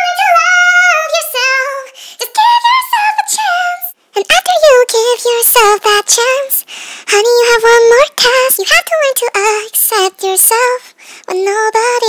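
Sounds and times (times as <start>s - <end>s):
sped-up high-pitched singing voice: 0.0s - 12.0s.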